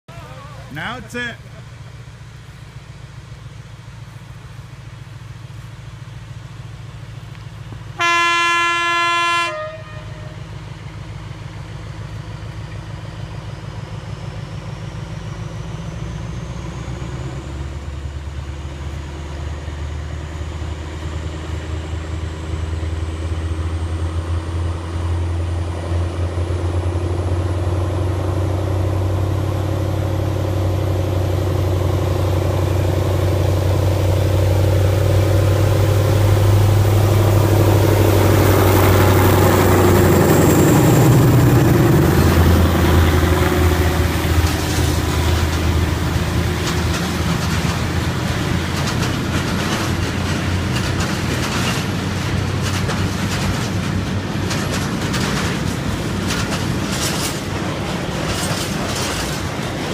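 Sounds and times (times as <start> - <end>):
diesel locomotive engine working hard: 0.1 - 59.9
tank wagons rolling by: 28.7 - 59.9.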